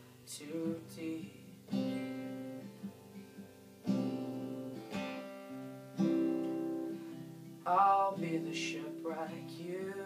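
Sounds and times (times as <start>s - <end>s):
acoustic guitar strummed chords: 0.0s - 10.0s.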